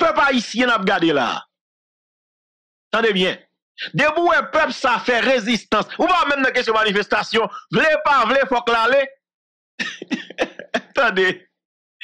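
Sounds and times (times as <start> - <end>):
man making broken vocal sounds: 9.8 - 11.4.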